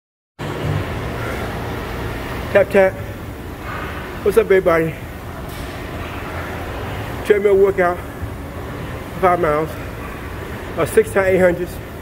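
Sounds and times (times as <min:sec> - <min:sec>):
treadmill motor rumble: 0:00.4 - 0:12.0.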